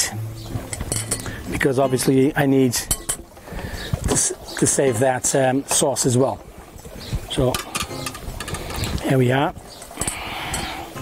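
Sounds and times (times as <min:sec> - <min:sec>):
metal cookware clinking: 0:00.6 - 0:02.2, 0:02.8 - 0:03.2, 0:07.5 - 0:08.8.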